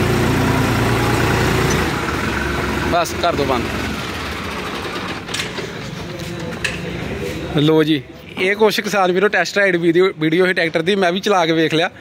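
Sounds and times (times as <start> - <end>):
tractor diesel engine idling: 0.0 - 6.4.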